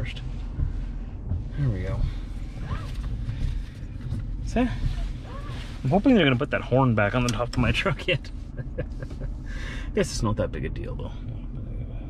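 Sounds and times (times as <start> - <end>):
pickup engine rumble inside cab: 0.0 - 12.0.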